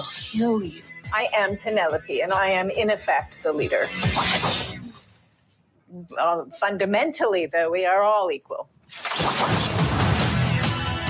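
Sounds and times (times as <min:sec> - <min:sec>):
bright crash: 0:08.9 - 0:10.4.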